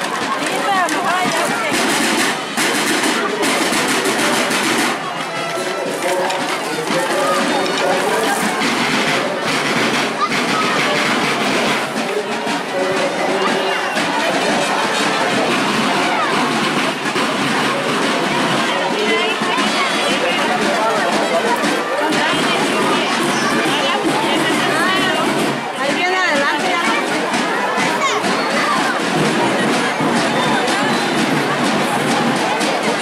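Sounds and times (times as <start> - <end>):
marching snare drums: 0.0 - 33.0
street crowd chatter: 0.0 - 33.0.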